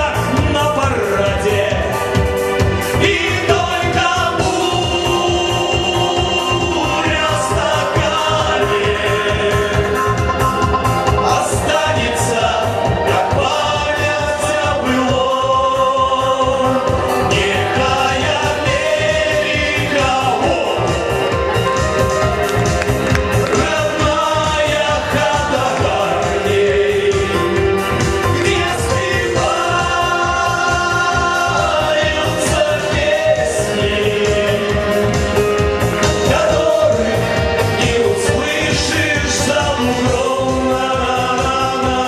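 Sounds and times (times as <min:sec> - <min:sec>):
men singing together: 0:00.0 - 0:21.3, 0:23.3 - 0:42.0
backing music with steady beat: 0:00.0 - 0:42.0
steady low beat: 0:01.4 - 0:15.5.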